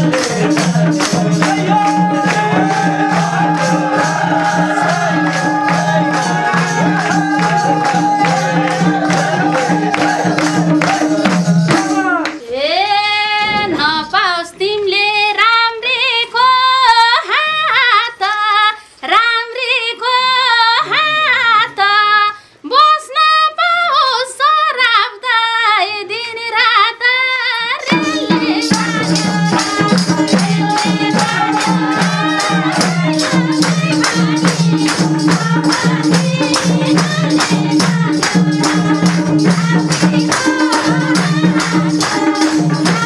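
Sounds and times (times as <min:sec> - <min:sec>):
woman singing in high voice: 0:01.3 - 0:43.0
tambourine strokes: 0:28.0 - 0:43.0.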